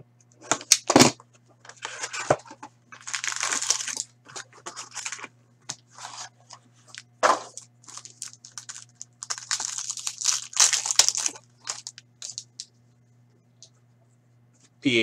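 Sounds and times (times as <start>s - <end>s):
faint low hum: 0.0s - 15.0s
wrapper rustling: 1.8s - 5.3s, 5.9s - 12.6s
wrapper crinkling tear: 2.9s - 4.1s, 4.7s - 5.2s, 6.9s - 12.7s.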